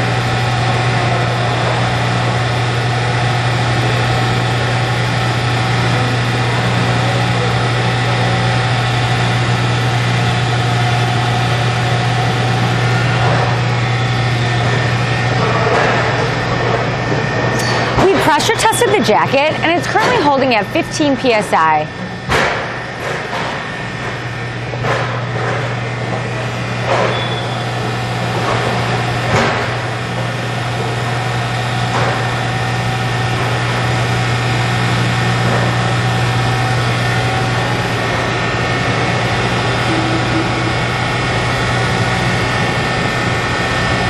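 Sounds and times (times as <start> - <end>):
electric motor humming: 34.0 - 44.0.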